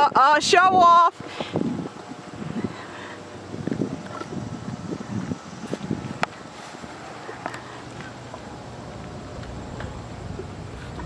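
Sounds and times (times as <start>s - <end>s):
wind noise on microphone: 0.0s - 7.4s.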